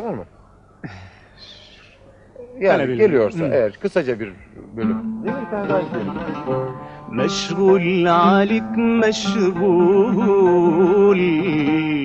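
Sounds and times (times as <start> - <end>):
oud plucked melody: 4.7 - 12.0.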